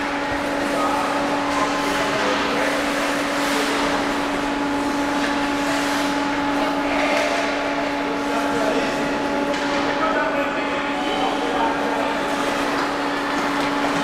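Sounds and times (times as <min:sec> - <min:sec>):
even wash of noise: 0:00.0 - 0:14.0
steady machine hum: 0:00.0 - 0:14.0.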